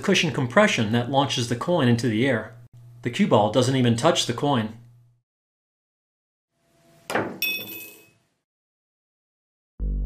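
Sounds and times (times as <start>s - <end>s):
coin clinking into glass: 7.4s - 8.1s.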